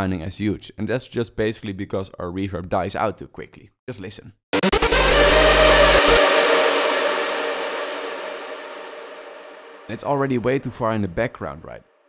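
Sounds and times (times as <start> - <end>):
synth lead melody: 4.6 - 10.4
reverb tail: 4.6 - 10.8.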